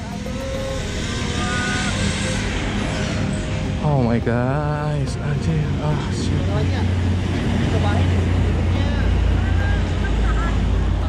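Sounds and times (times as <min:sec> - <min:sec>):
motorbikes passing: 0:00.0 - 0:11.0
road traffic noise: 0:00.0 - 0:11.0.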